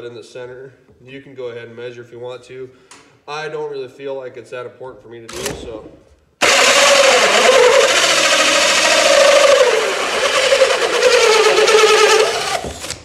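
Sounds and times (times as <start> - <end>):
cordless drill cutting through wood: 6.4 - 13.0.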